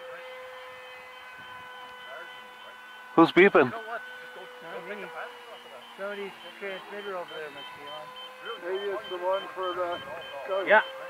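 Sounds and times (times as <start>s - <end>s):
steady electronic beeping tone: 5.6s - 11.0s.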